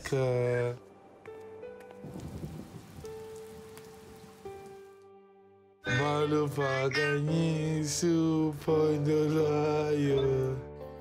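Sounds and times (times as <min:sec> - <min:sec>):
soft sustained music: 0:00.0 - 0:11.0
heavy rain: 0:01.9 - 0:05.0.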